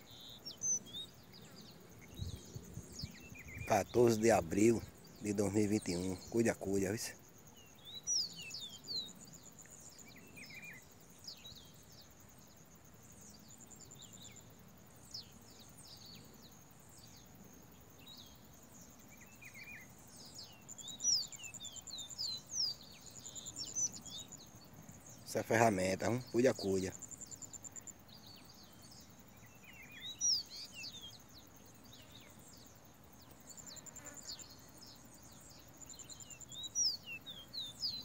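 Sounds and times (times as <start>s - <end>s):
bird chirping: 0.0s - 38.0s.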